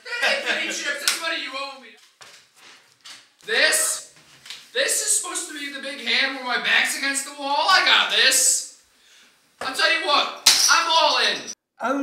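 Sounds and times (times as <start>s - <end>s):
man speaking: 0.0s - 2.0s, 3.4s - 4.1s, 4.8s - 8.8s, 9.6s - 11.6s.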